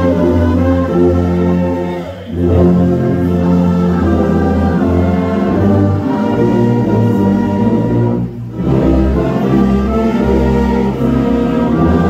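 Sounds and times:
orchestra playing a hymn: 0.0 - 12.0.

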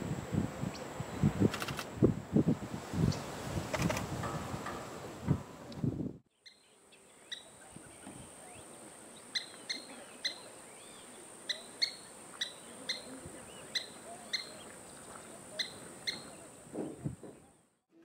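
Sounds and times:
bird sharp kip calls: 11.4 - 16.6.

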